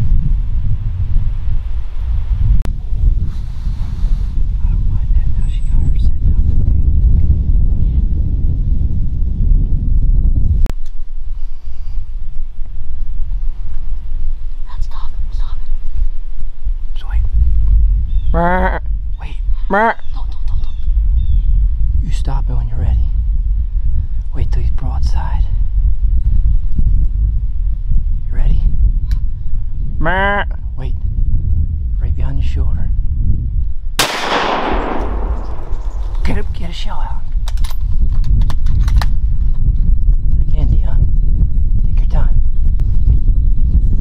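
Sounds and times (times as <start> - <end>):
wind rumbling on microphone: 0.0 - 44.0
gunshot with echo: 34.0 - 36.6.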